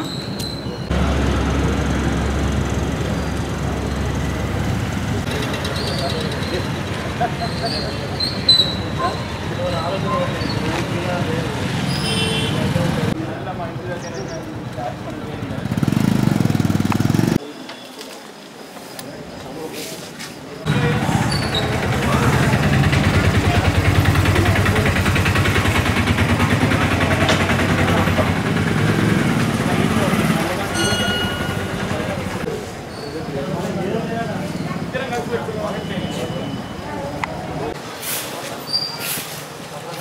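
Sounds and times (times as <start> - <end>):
people talking: 2.9 - 15.9, 17.2 - 40.0
motorcycle engine running: 15.5 - 17.4, 21.7 - 32.4.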